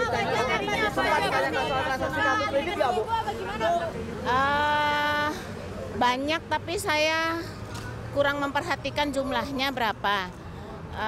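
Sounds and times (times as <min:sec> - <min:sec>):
reporters calling out questions: 0:00.0 - 0:11.0.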